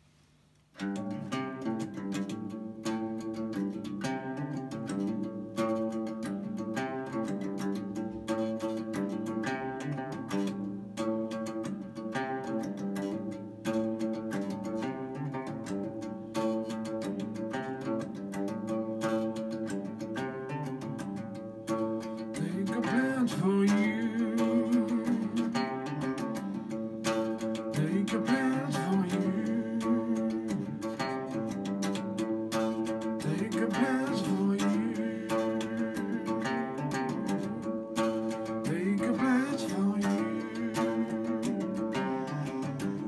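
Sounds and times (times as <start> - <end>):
electric guitar strummed chords: 0.8 - 43.0.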